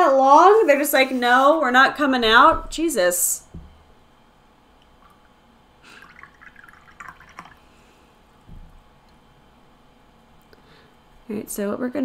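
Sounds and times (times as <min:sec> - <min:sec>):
soft low thump: 0:03.5 - 0:03.8, 0:08.4 - 0:08.8.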